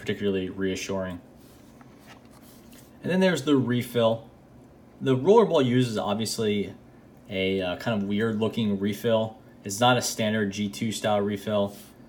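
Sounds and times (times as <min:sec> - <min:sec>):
pen handling sounds: 0:01.4 - 0:02.9.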